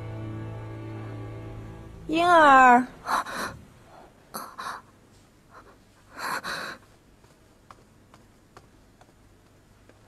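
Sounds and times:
person gasping: 3.0 - 4.9, 5.5 - 6.9.

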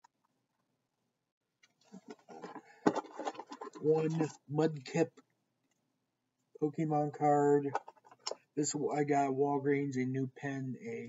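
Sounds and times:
man speaking: 3.8 - 5.2, 6.6 - 7.8, 8.6 - 11.0.

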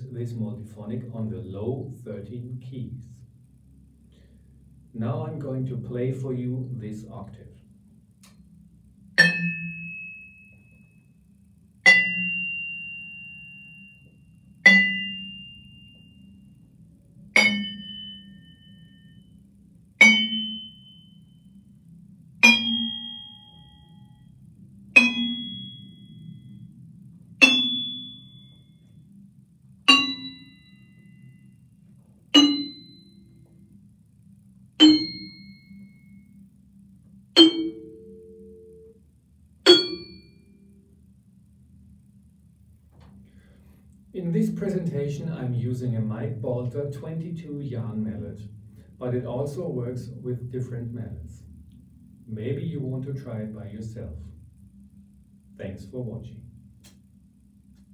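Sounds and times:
vibraphone notes ringing: 9.2 - 10.6, 11.9 - 16.3, 17.4 - 19.2, 20.0 - 21.2, 22.4 - 24.1, 25.0 - 26.4, 27.4 - 28.7, 29.9 - 31.4, 32.4 - 33.1, 34.8 - 35.9, 37.4 - 38.9, 39.7 - 40.4.

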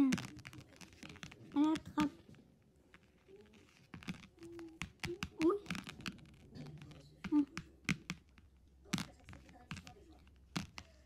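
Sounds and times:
plastic toys tapping on book: 0.0 - 11.0.

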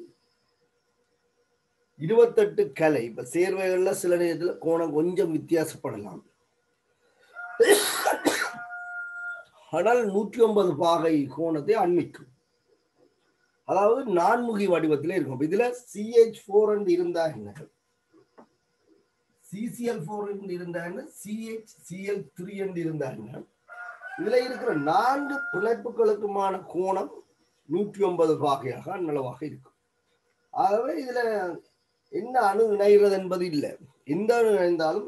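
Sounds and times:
person speaking: 2.0 - 6.2, 9.7 - 12.2, 13.7 - 17.6, 19.5 - 23.4, 24.2 - 29.6, 30.6 - 31.6, 32.2 - 35.0
person coughing: 7.6 - 8.7.

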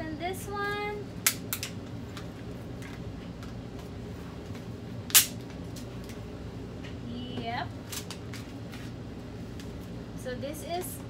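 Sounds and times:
sharp snap: 1.2 - 1.7, 5.1 - 5.4.

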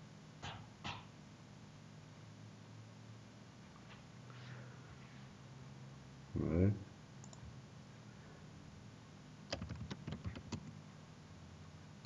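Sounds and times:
faint low hum: 0.0 - 12.0
computer mouse click: 7.2 - 7.4.

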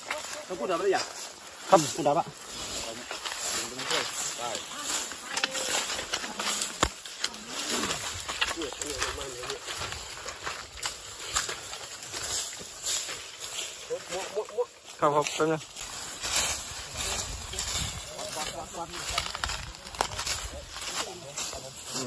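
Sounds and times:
dry leaves and twigs crunching: 0.0 - 22.0
twig snapping: 4.9 - 12.6, 19.0 - 21.0.

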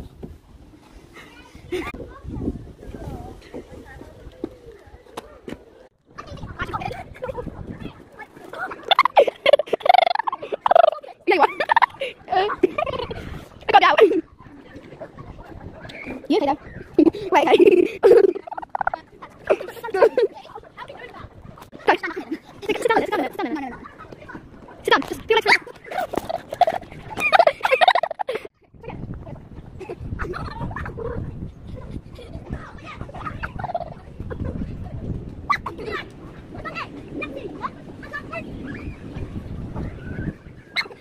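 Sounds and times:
girl laughing hard: 8.9 - 13.2, 17.0 - 18.8, 26.6 - 28.5.

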